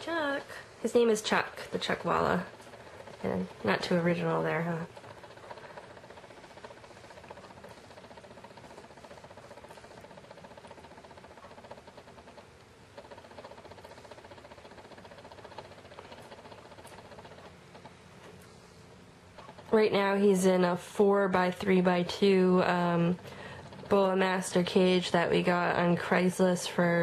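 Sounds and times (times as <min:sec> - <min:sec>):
faint steady hum: 0:00.0 - 0:27.0
small ticks and rustles: 0:00.5 - 0:18.8.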